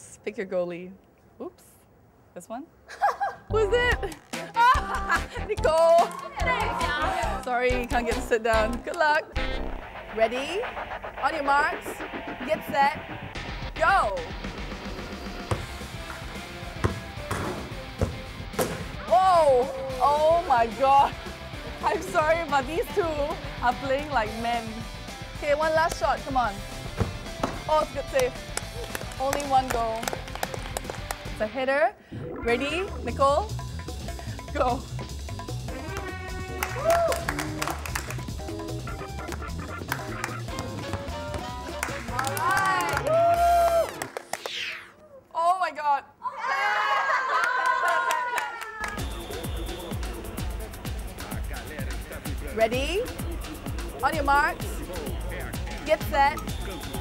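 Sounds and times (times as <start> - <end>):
background music: 3.4 - 44.4, 48.8 - 57.0
soccer ball kicked: 16.8 - 19.0, 27.0 - 27.7
music with drums and bass: 32.5 - 41.8, 49.0 - 57.0.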